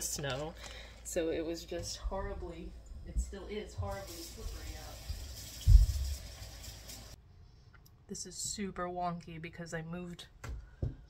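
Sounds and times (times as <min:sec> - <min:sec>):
kitchen room noise hiss: 0:03.4 - 0:07.2.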